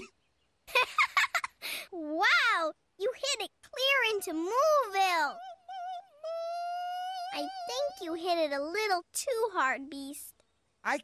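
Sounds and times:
cartoon character giggling: 0.7 - 1.7
cartoon character wordless cry: 4.5 - 8.2.

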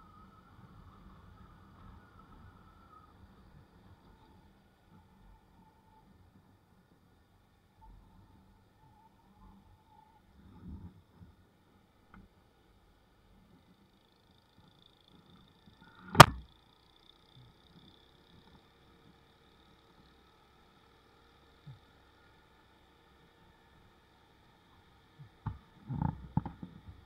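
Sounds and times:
faint steady hum: 0.0 - 27.0.

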